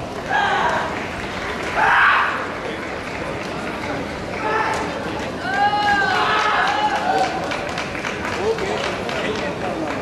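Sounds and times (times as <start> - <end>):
echoing din of crowded hall: 0.0 - 10.0.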